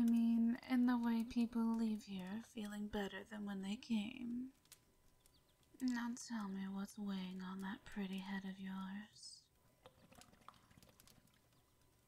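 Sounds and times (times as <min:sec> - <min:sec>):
water bubbling in hookah: 0:09.7 - 0:12.0.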